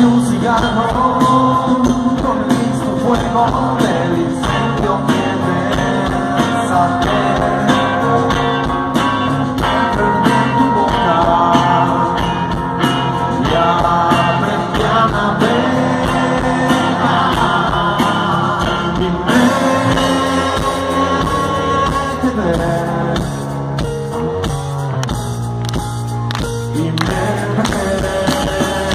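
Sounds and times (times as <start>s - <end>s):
person singing: 0.0s - 23.6s, 26.6s - 28.9s
rock band playing live: 0.0s - 28.9s.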